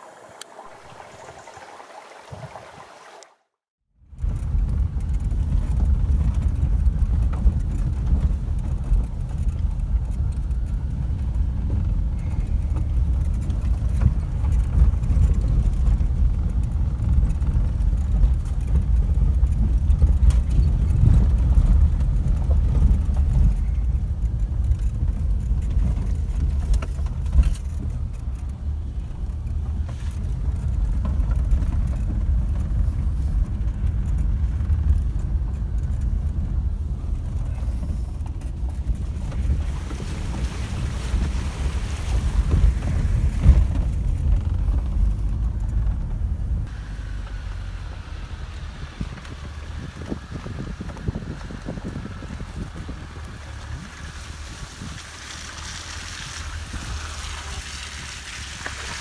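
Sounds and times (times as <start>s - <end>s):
vehicle rumble from inside cabin: 4.0s - 59.0s.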